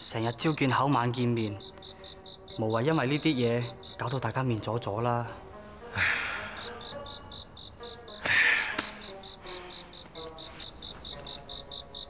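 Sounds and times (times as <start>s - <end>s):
cricket chirping: 0.0s - 4.7s, 6.0s - 12.0s
soft background music: 0.0s - 12.0s.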